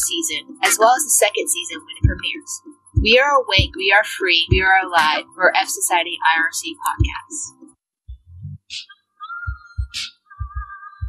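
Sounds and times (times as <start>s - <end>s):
low electronic thumps: 2.0s - 2.4s, 3.0s - 3.8s, 4.5s - 5.2s, 6.9s - 7.2s, 8.1s - 8.8s.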